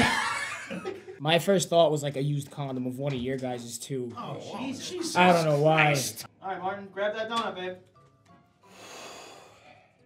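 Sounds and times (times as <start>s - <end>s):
faint background music: 0.0s - 10.0s
person breathing out: 8.6s - 10.0s.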